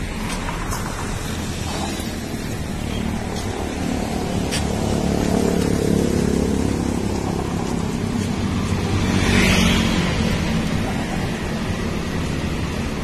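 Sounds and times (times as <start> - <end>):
road noise: 0.0 - 13.0
vehicle engine running: 0.0 - 13.0.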